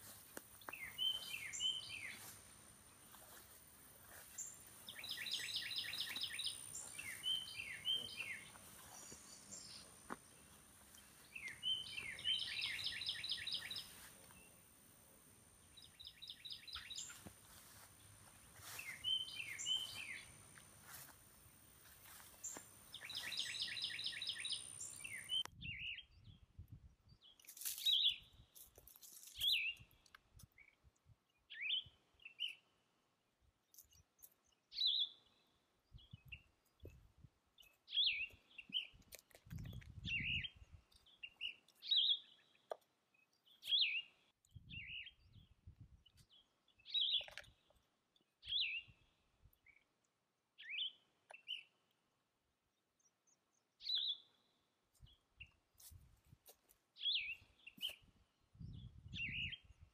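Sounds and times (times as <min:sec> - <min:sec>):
bird chirps: 0:00.6 - 0:02.4, 0:04.1 - 0:14.6, 0:15.6 - 0:21.0, 0:22.1 - 0:26.3, 0:39.6 - 0:45.4, 0:48.4 - 0:49.0, 0:53.8 - 0:55.6, 0:57.0 - 0:59.9
songbird singing with trill: 0:00.6 - 0:02.4, 0:04.4 - 0:10.4, 0:11.0 - 0:14.6, 0:15.6 - 0:17.3, 0:18.6 - 0:20.6, 0:22.4 - 0:28.5, 0:29.3 - 0:30.0, 0:31.4 - 0:32.6, 0:33.8 - 0:37.0, 0:37.6 - 0:39.0, 0:39.6 - 0:47.7, 0:48.4 - 0:49.8, 0:50.6 - 0:51.8, 0:53.0 - 0:55.6, 0:57.0 - 0:59.9.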